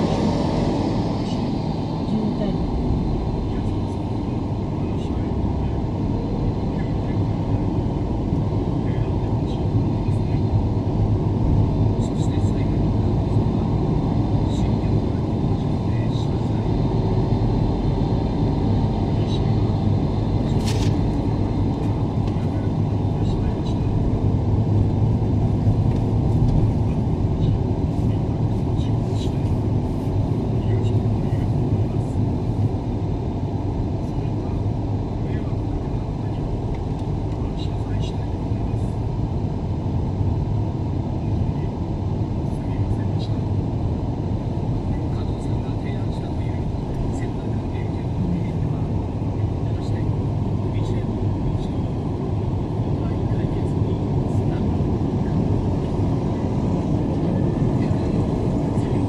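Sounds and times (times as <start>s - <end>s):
car road noise: 0.0s - 59.0s.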